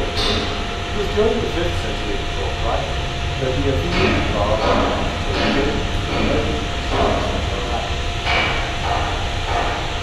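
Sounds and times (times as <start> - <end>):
factory machine rumble: 0.0 - 10.0.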